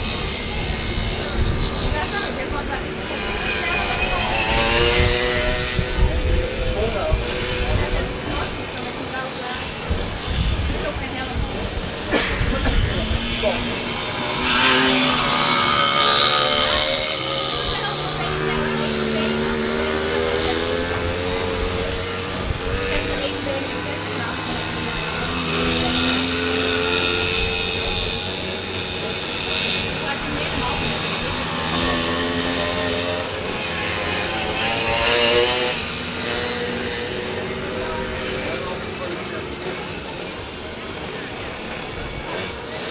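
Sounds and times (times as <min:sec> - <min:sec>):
motorcycle engines racing: 0:00.0 - 0:42.9
motorcycle passing close: 0:00.0 - 0:42.9.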